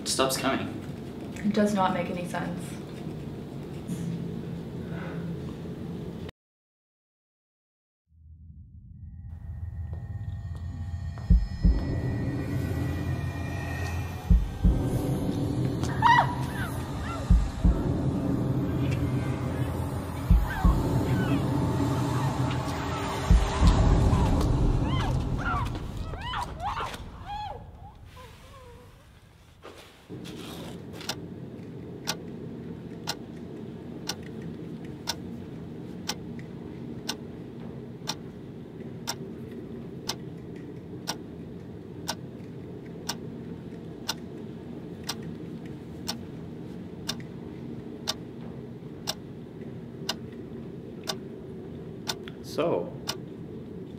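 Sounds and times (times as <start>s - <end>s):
steady low hum: 0.0s - 6.3s, 8.2s - 53.9s
tense horror film score: 8.1s - 29.1s, 30.1s - 53.9s
clock ticking: 23.2s - 24.0s, 32.0s - 32.3s, 33.0s - 33.2s, 34.0s - 34.3s, 35.0s - 35.2s, 37.0s - 37.2s, 38.0s - 38.3s, 39.0s - 39.2s, 40.0s - 40.2s, 41.0s - 41.2s, 43.0s - 43.3s, 44.0s - 44.2s, 48.0s - 48.2s, 51.0s - 51.2s, 53.0s - 53.2s.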